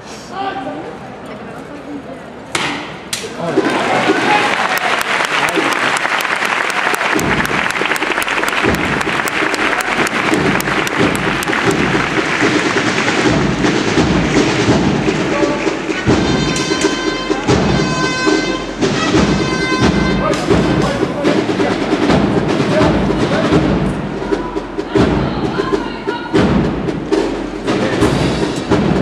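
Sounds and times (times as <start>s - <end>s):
crowd applauding: 3.4s - 21.1s
brass sustained notes: 6.3s - 21.8s
marching band drums: 6.6s - 29.0s.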